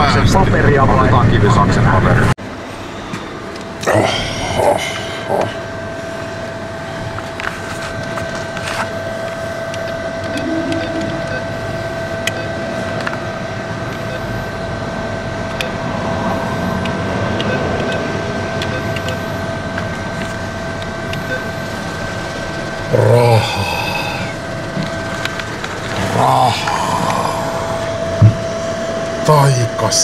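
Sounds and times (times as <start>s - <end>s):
machine hum: 2.4s - 30.0s.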